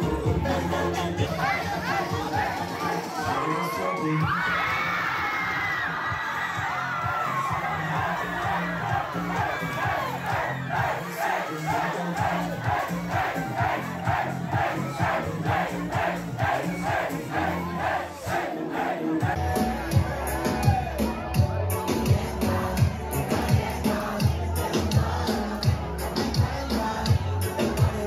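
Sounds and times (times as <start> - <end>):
music with bass beat: 0.0 - 3.4, 4.0 - 18.6, 19.2 - 28.0
crowd chanting: 0.0 - 4.3, 5.5 - 28.0
party crowd shouting: 0.0 - 28.0.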